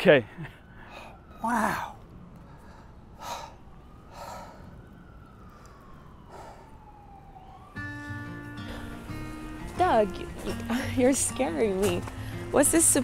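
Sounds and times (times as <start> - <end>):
faint distant siren: 0.0 - 13.0
breathy exhalations: 0.7 - 4.8
music: 7.8 - 13.0.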